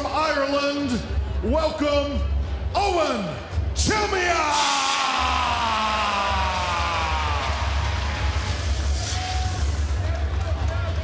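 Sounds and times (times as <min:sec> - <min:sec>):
pulsing bass music: 0:05.2 - 0:11.0.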